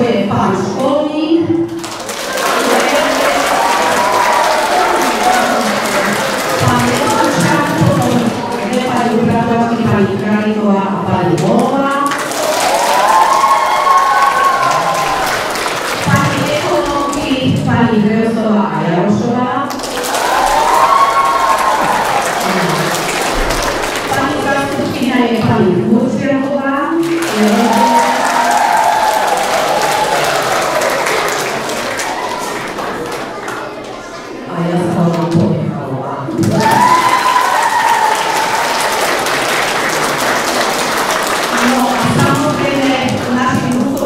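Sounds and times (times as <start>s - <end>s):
audience applauding: 1.7s - 9.6s, 11.4s - 17.2s, 19.7s - 25.1s, 27.0s - 34.1s, 36.4s - 44.0s.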